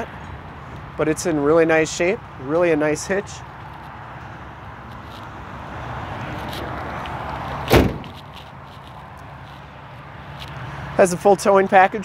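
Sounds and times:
outdoor background noise: 0:00.0 - 0:12.0
loud slam: 0:07.7 - 0:08.1.

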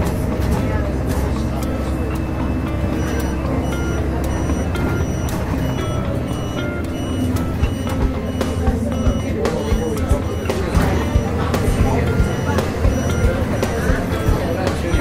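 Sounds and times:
bus engine and road rumble: 0:00.0 - 0:15.0
short high beeps: 0:01.7 - 0:15.0.

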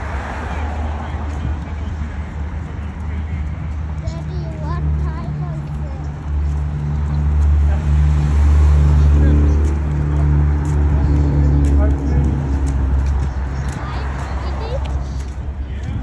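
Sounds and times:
city street traffic: 0:00.0 - 0:16.0
motor vehicle engine rumble: 0:00.0 - 0:16.0.

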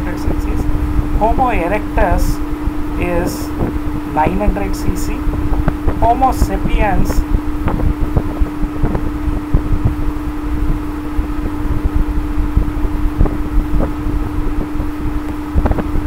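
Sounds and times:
background rumble with humming tone: 0:00.0 - 0:16.0.

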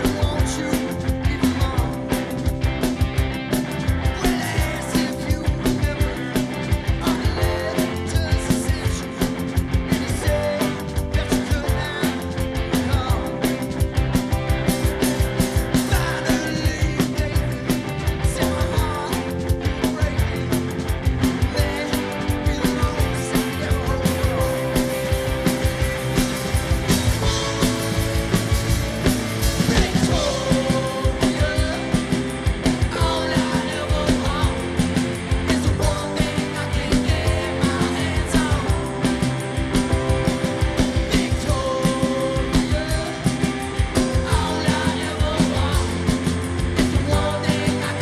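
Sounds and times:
lead singer singing: 0:00.0 - 0:02.5, 0:04.0 - 0:13.9, 0:15.6 - 0:48.0
rock band playing live: 0:00.0 - 0:48.0.

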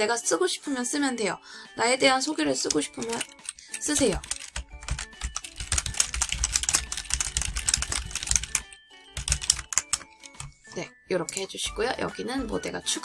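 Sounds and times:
keyboard typing clicks: 0:02.6 - 0:10.6.

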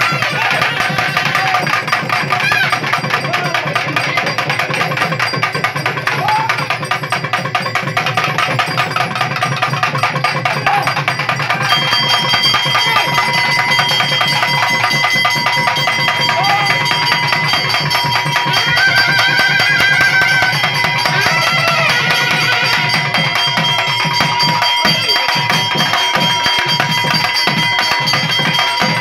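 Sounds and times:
fast dense drumming: 0:00.0 - 0:29.0.

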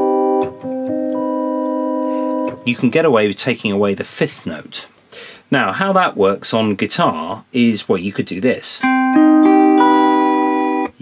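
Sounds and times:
electric guitar chord ringing: 0:00.0 - 0:02.7, 0:08.8 - 0:11.0.

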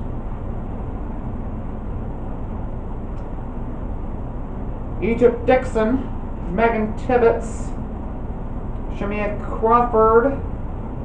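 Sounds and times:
low rumble with hiss: 0:00.0 - 0:11.0.

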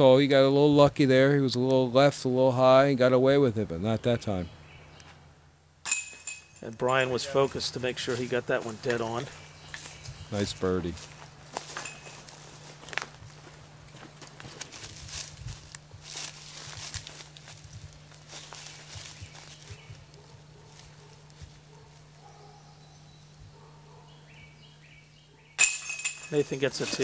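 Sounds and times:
faint low hum: 0:00.0 - 0:27.0
footsteps crunching on dry leaves: 0:06.9 - 0:22.3, 0:26.4 - 0:27.0.

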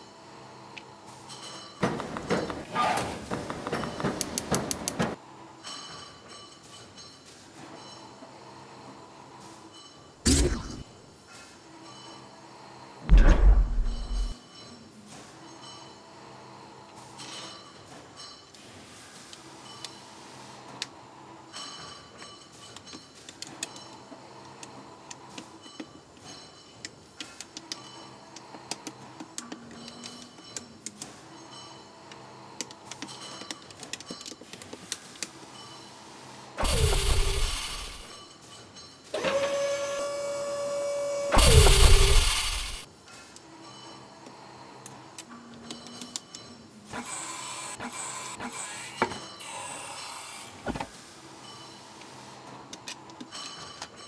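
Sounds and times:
steady hum: 0:13.1 - 0:14.4.

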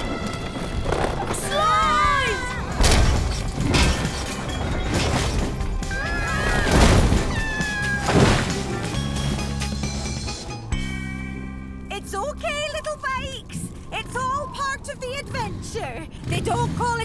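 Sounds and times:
crashes: 0:00.0 - 0:09.3
background music: 0:00.0 - 0:16.8.

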